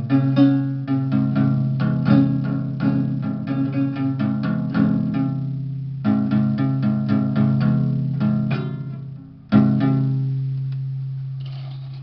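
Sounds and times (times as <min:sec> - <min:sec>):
acoustic guitar chord ringing: 0:00.0 - 0:11.9.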